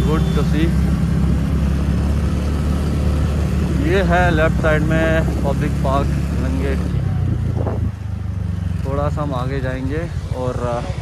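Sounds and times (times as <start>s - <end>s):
scooter engine drone: 0.0s - 11.0s
wind rumbling on microphone: 4.6s - 8.5s.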